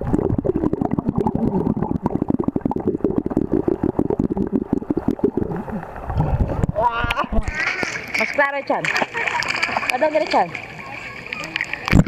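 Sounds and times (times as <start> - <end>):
muffled underwater bubbling: 0.0 - 8.4
low water churn: 0.0 - 12.0.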